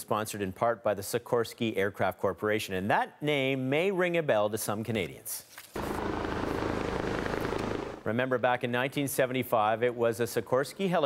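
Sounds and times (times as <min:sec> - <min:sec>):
helicopter hovering: 0:05.8 - 0:08.1.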